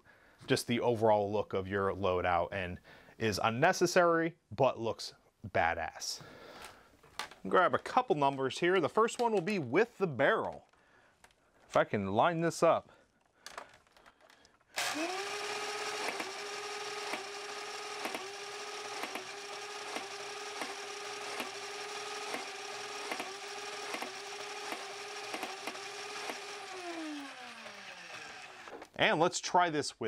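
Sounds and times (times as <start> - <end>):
toy blaster motor whine: 14.8 - 28.8
toy blaster firing snaps: 15.8 - 26.6.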